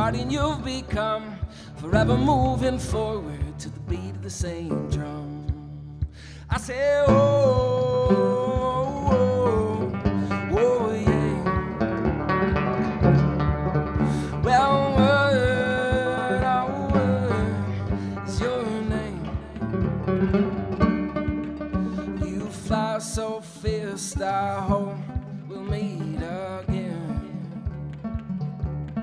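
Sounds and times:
banjo picked steadily: 0.0 - 29.0
man singing long sliding notes: 6.5 - 11.8, 14.0 - 19.6, 21.9 - 27.3.

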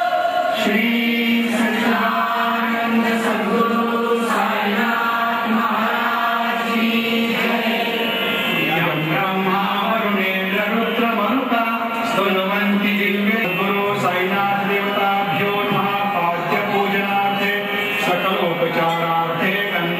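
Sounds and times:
devotional chanting: 0.0 - 19.9.

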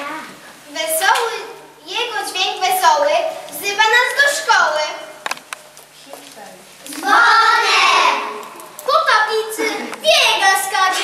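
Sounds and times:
child's voice: 6.9 - 11.0.

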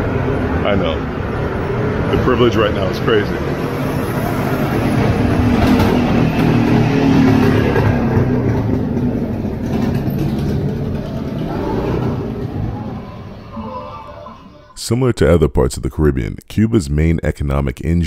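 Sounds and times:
street noise: 0.0 - 15.1
vehicle engine running: 0.2 - 13.5.

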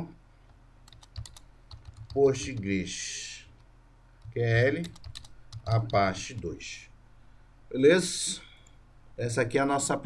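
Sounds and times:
keyboard typing clicks: 0.8 - 2.7, 4.2 - 6.5.

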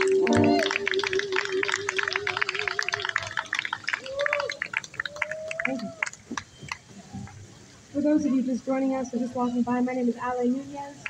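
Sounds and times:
audience clapping: 0.0 - 7.4
voices calling out: 0.0 - 11.0.

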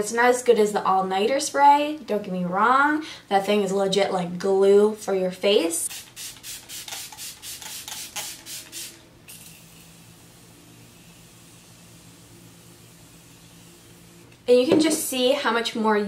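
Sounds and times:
continuous spray mist hiss: 5.8 - 14.4
spray bottle squirts: 5.9 - 10.0.

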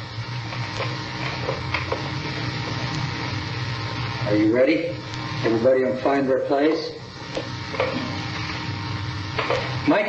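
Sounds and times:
tape hum and hiss: 0.0 - 10.0.

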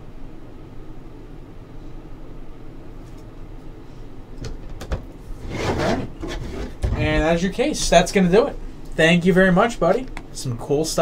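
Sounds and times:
plastic sliding scrape: 5.4 - 7.2.

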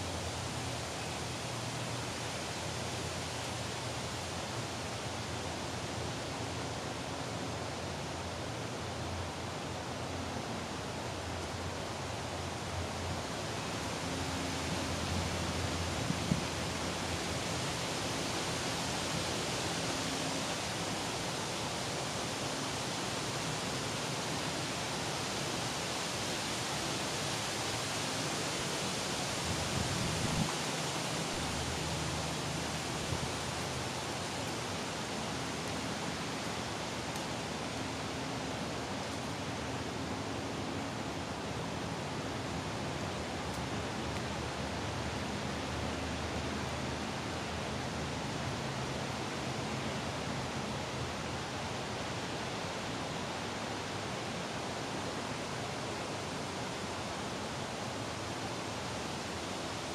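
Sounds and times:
steady background hiss: 0.0 - 59.9.

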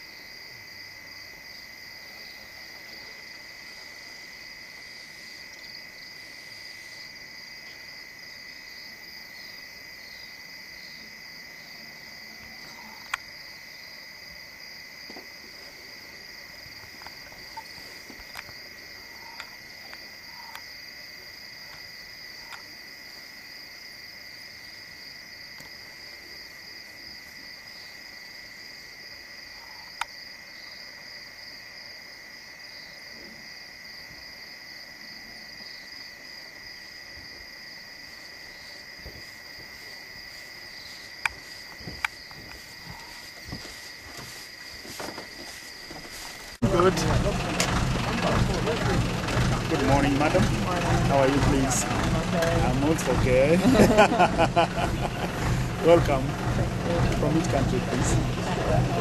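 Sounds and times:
faint insect calls: 0.0 - 46.6
crickets trilling: 0.0 - 59.0.

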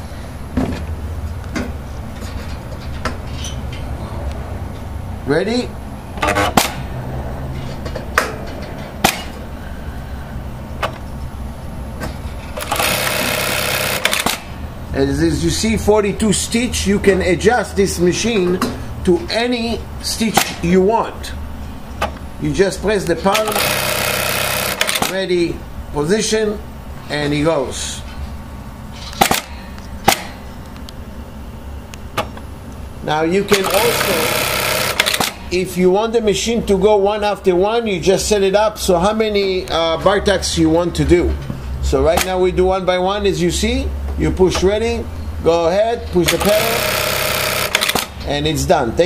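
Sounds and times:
sharp mechanical clacks: 6.2 - 6.9, 12.4 - 14.6, 23.0 - 25.2, 29.0 - 30.4, 33.5 - 35.5, 46.1 - 48.4
rapid machine stitching: 12.6 - 14.5, 23.3 - 25.2, 33.5 - 35.4, 46.3 - 48.2
sharp machine clicks: 12.6 - 14.6, 23.3 - 25.2, 29.2 - 30.3, 33.5 - 35.5, 46.2 - 48.3.

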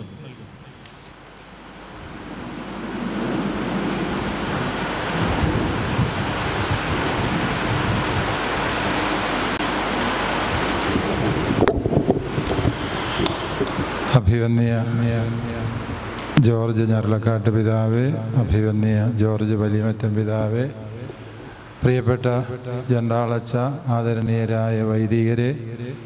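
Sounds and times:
wind buffeting microphone: 1.5 - 14.3.

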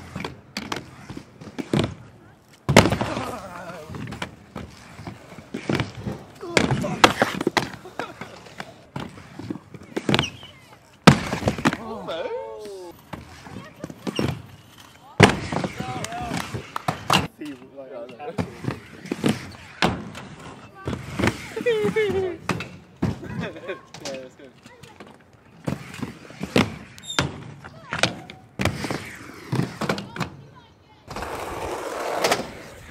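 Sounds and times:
inline skates clacking on ramp: 2.7 - 12.0, 15.2 - 17.3, 31.1 - 32.9.

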